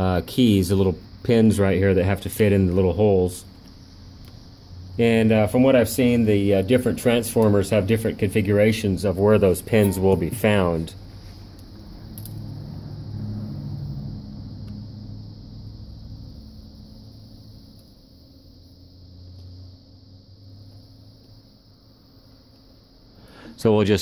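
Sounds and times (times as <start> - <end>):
low rumble with hum: 0.0 - 23.4.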